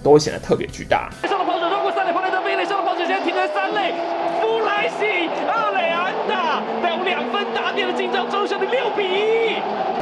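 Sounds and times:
announcer's excited voice: 1.2s - 9.7s
stadium crowd cheering: 1.2s - 10.0s
stadium music: 1.2s - 10.0s.

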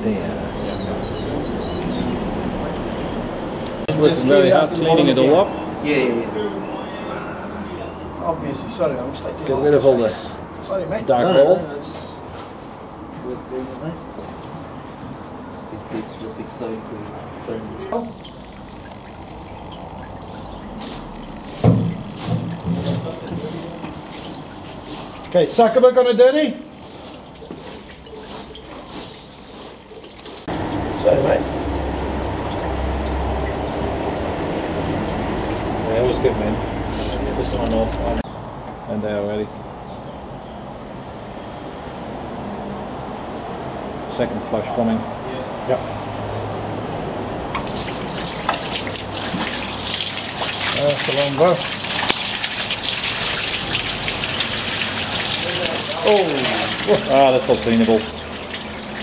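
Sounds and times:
oil dripping and trickling: 1.1s - 59.0s
oil jetting from hose nozzle: 47.5s - 59.0s.

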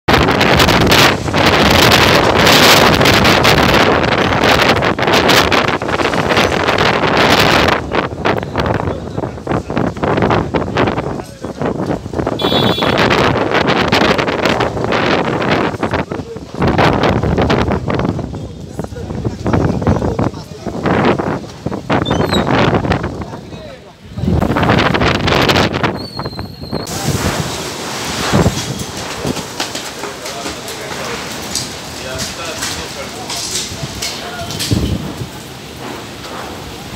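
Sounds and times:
strong wind buffeting microphone: 0.1s - 29.9s, 30.6s - 36.9s.

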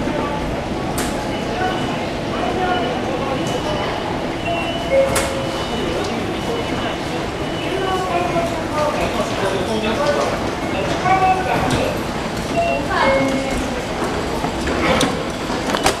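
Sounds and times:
people talking indistinctly: 0.0s - 15.2s.

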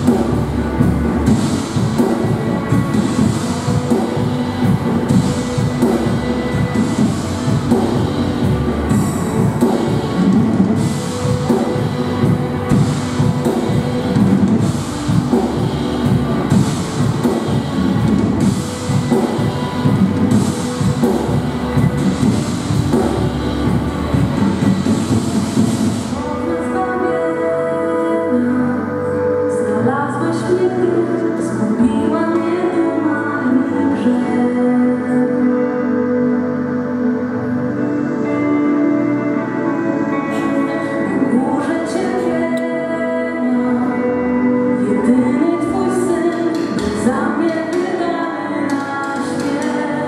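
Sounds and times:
drums and bass: 0.0s - 27.0s, 45.0s - 50.0s
worship band playing: 0.0s - 29.7s, 33.4s - 50.0s.

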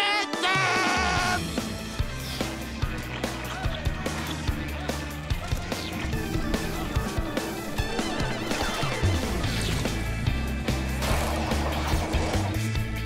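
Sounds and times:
bass line: 1.2s - 13.0s.

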